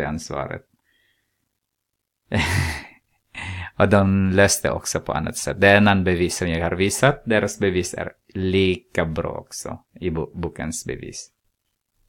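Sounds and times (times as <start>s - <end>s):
man breathing: 0.8s - 1.6s, 2.5s - 3.8s
man laughing: 2.3s - 3.7s
man sighing: 2.3s - 3.8s.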